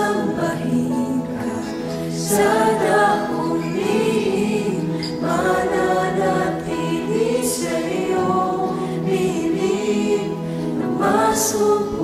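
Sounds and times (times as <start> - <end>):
mixed choir singing worship song: 0.0 - 12.0.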